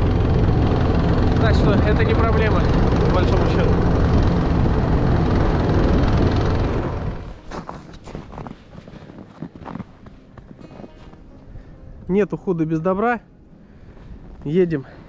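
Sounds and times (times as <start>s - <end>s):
small petrol engine running: 0.0s - 7.4s.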